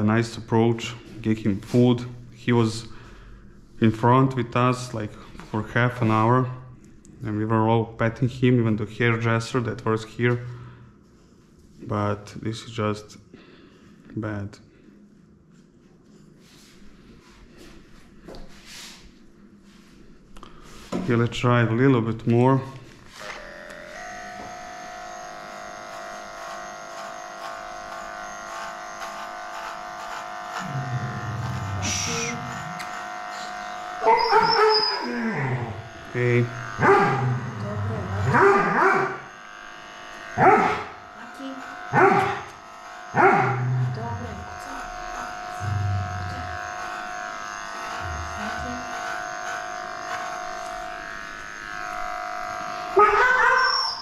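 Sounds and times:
electric clipper humming: 22.8s - 54.0s
dog barking: 36.8s - 37.3s, 38.3s - 39.2s, 40.4s - 40.9s, 41.9s - 42.4s, 43.2s - 43.6s.

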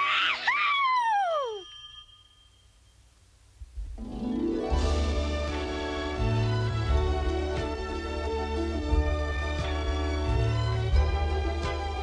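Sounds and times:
high cartoon cry sliding down: 0.0s - 1.8s
low music: 3.8s - 12.0s
music: 4.0s - 12.0s.

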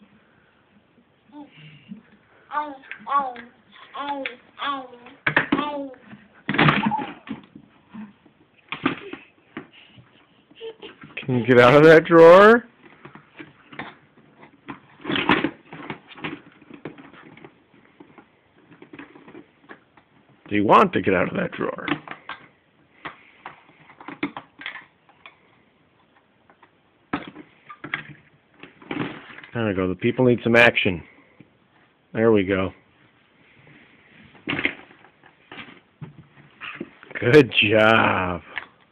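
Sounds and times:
muffled toddler vocal sounds: 1.3s - 8.2s, 8.9s - 12.5s.

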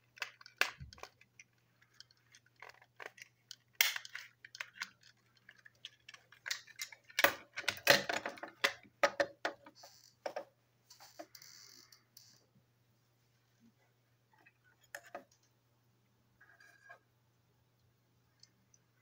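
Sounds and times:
plastic toy parts clicking: 0.0s - 10.4s.

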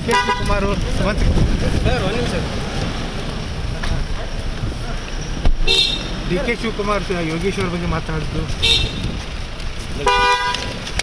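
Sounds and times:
murmuring voices: 0.0s - 11.0s
traffic: 0.0s - 11.0s
short high vehicle horn: 5.6s - 6.1s.

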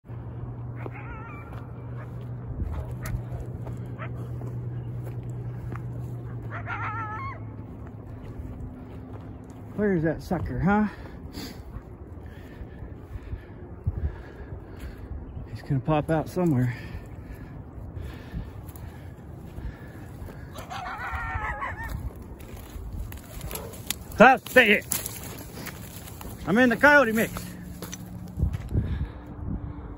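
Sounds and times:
rustling through dry brush: 0.1s - 29.2s
coyote cries: 0.8s - 2.0s, 6.2s - 7.8s, 20.2s - 23.8s.

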